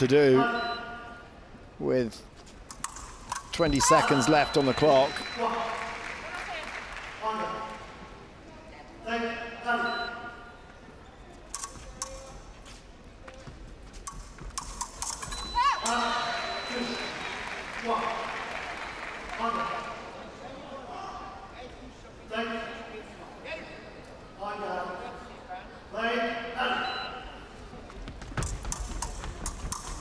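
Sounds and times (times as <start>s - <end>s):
fencing blades clicking: 2.6s - 3.6s, 11.5s - 12.8s, 14.0s - 16.2s, 28.4s - 30.0s
footwork: 27.9s - 30.0s.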